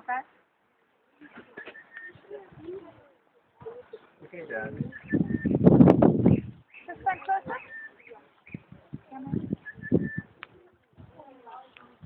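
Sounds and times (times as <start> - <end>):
high whistled bird notes: 1.6 - 2.3, 4.8 - 8.7, 9.3 - 10.4.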